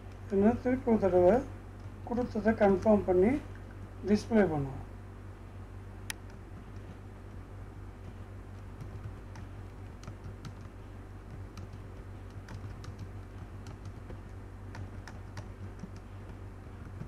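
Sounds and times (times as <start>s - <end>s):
steady low hum: 0.0s - 17.0s
keyboard keystroke clicks: 8.6s - 17.0s.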